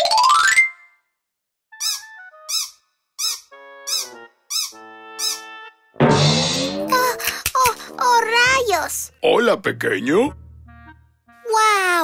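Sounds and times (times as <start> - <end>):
cartoon squeaky footsteps: 1.8 - 5.5
short music notes: 6.0 - 7.5.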